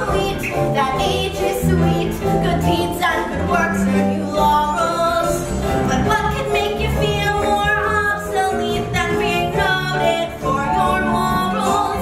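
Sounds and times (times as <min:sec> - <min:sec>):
voices singing with accompaniment: 0:00.0 - 0:12.0.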